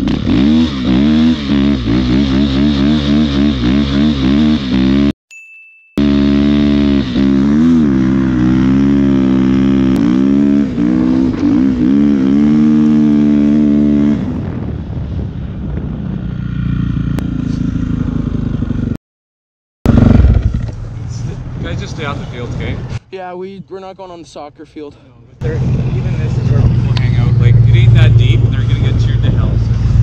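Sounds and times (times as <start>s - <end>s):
dirt bike engine revving: 0.0s - 5.1s, 6.0s - 14.7s, 19.9s - 21.1s.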